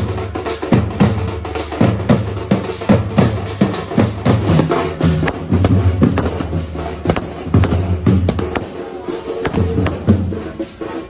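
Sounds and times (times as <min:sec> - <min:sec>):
music with booming beat: 0:00.0 - 0:11.0
sharp bangs: 0:04.4 - 0:10.3.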